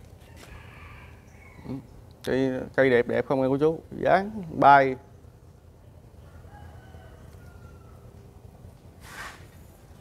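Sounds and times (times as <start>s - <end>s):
faint rooster crow: 0.2s - 1.9s, 6.1s - 8.5s.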